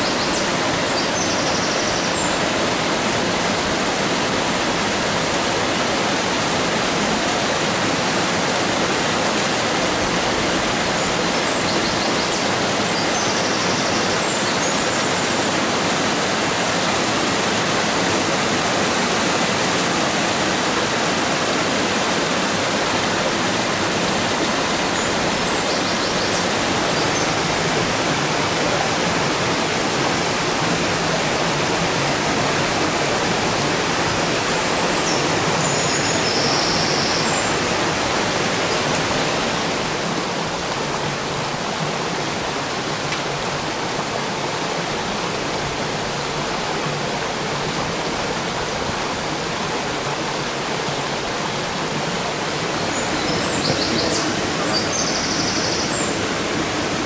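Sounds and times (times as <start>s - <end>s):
stream rushing over rocks: 0.0s - 57.0s.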